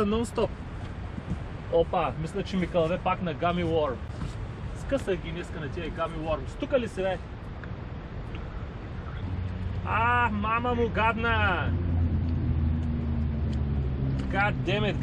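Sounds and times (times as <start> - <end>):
man talking: 0.0 - 0.5, 1.7 - 4.1, 4.8 - 7.2, 9.8 - 11.8, 14.2 - 15.0
low steady engine drone: 0.0 - 15.0.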